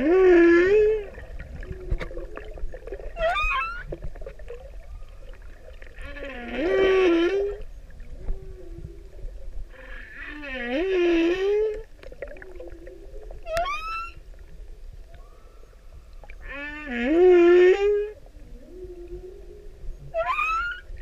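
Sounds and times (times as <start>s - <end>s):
humpback whale singing: 0.0s - 4.0s, 4.6s - 21.0s.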